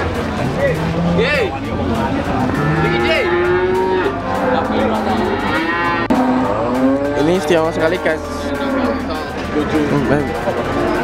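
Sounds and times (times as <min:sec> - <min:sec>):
cattle mooing: 0:00.4 - 0:09.3.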